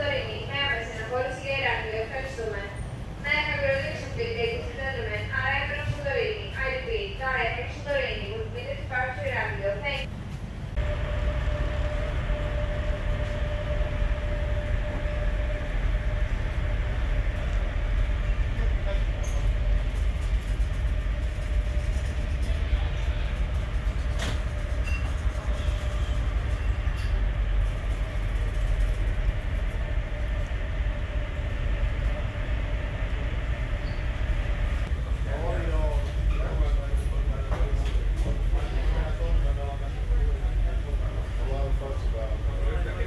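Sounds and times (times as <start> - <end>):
faint steady hum: 0.0 - 43.0
ferry engines rumbling: 0.0 - 43.0.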